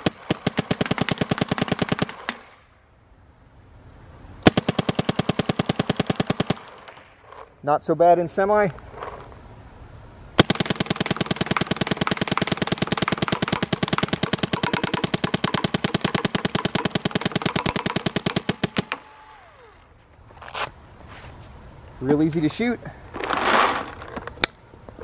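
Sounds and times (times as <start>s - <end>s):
paintball marker shots: 10.4s - 19.1s.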